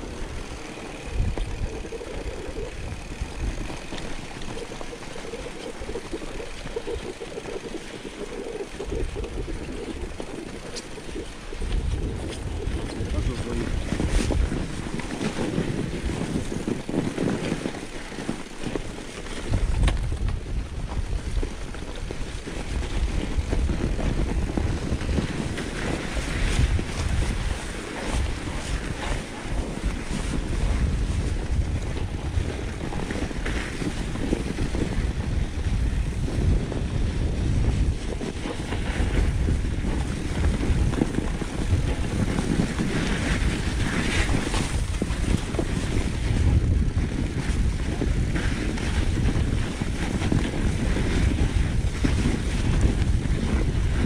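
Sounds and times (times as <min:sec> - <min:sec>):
wind noise on microphone: 0:00.0 - 0:54.0
tyres crunching on snow: 0:09.2 - 0:54.0.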